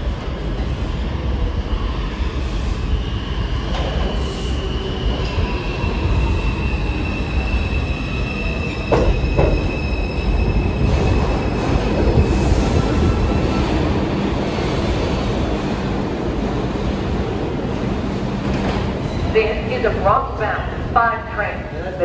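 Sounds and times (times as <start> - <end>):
subway train rumble: 0.0 - 22.0.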